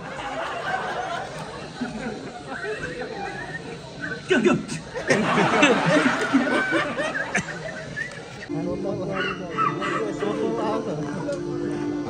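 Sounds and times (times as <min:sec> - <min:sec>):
people laughing: 0:00.0 - 0:11.8
overlapping voices: 0:00.0 - 0:12.0
film music with held note: 0:08.5 - 0:12.0.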